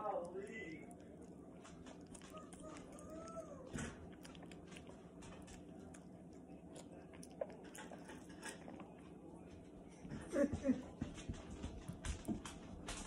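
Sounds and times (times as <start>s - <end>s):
dog chewing wet food: 0.0s - 13.0s.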